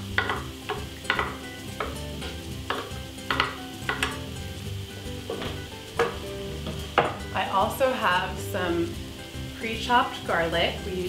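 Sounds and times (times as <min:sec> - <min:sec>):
food sizzling in a frying pan: 0:00.0 - 0:11.0
kitchen utensils knocking and scraping: 0:00.2 - 0:02.0, 0:02.7 - 0:04.2, 0:05.3 - 0:07.3.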